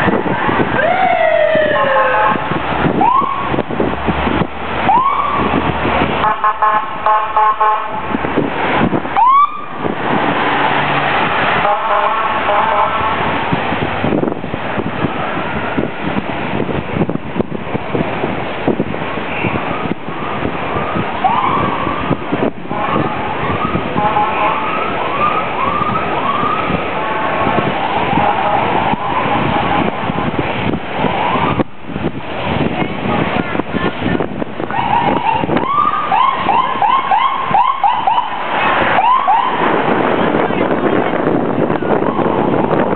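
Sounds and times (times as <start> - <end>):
street traffic noise: 0.0 - 42.9
siren-like pitched calls: 0.8 - 2.4, 4.9 - 5.5, 20.8 - 22.1, 22.7 - 27.3
horn: 11.6 - 13.2.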